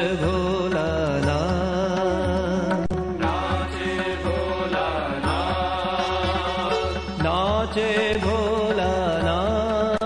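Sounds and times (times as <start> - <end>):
steady drum beat: 0.3 - 10.0.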